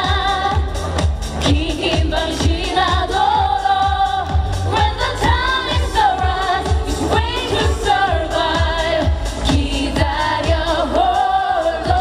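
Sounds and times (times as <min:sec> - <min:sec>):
band with steady drum beat: 0:00.0 - 0:12.0.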